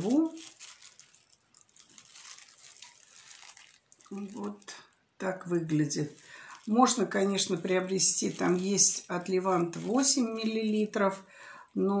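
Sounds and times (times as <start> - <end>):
faint rustling and handling: 0.0 - 12.0.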